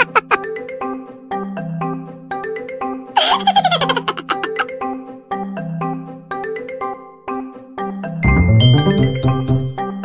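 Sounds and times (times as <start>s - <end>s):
high-pitched giggle: 0.0s - 0.4s, 3.2s - 4.7s
light marimba music: 8.2s - 10.0s.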